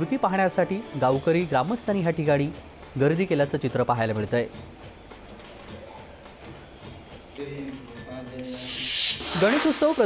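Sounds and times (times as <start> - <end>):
transition whoosh hiss: 8.5 - 10.0.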